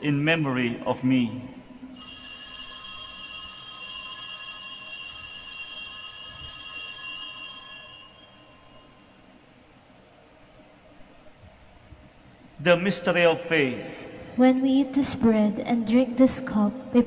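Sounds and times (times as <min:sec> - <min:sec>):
altar bells ringing: 0:01.9 - 0:09.3.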